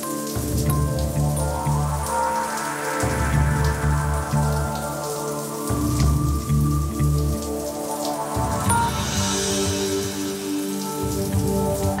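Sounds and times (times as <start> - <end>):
background music: 0.0 - 12.0
shower water hissing: 0.0 - 12.0.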